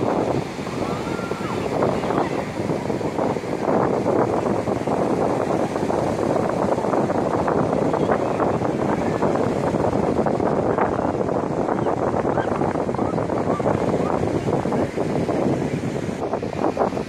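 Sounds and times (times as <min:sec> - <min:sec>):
murmur of crowd voices: 0:00.0 - 0:03.8
surf: 0:00.0 - 0:17.0
wind: 0:00.0 - 0:17.0.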